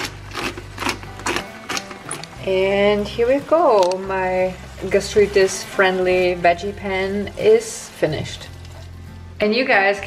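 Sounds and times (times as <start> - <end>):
pepper mill grinding: 0.0 - 9.0.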